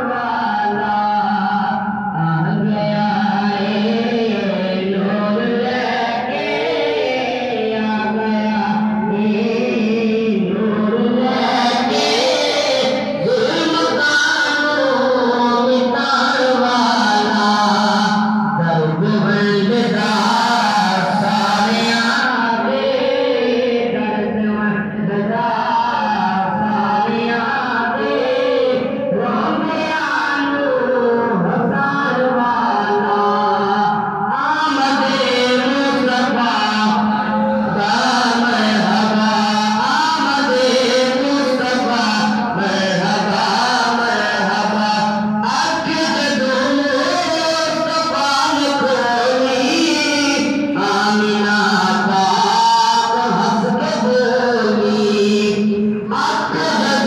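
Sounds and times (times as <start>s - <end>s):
boys chanting in unison: 0.0s - 57.0s
young man singing unaccompanied: 0.0s - 57.0s.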